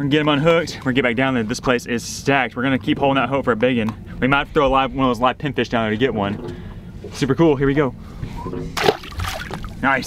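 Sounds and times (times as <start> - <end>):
fish splashing into water: 8.8 - 9.8.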